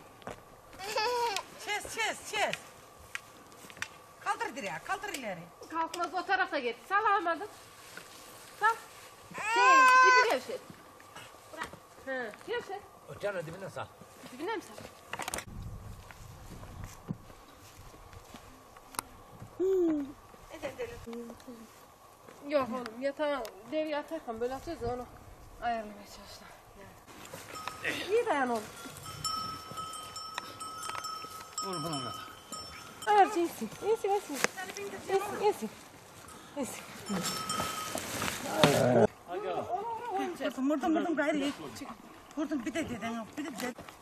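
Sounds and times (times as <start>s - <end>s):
faint outdoor background: 0.0s - 44.0s
metal livestock bell ringing: 27.4s - 34.2s, 36.2s - 38.2s.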